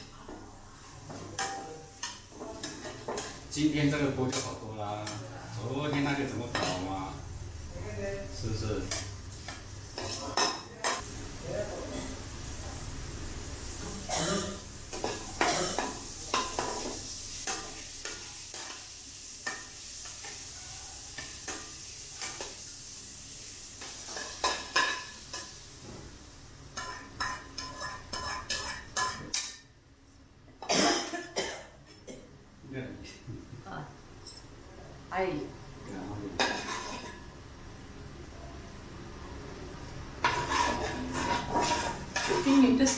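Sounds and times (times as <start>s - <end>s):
chilies sizzling in hot oil: 0.0s - 29.5s, 39.8s - 42.9s
metal spatula scraping a pan: 26.8s - 29.6s, 36.4s - 37.2s, 40.2s - 42.9s.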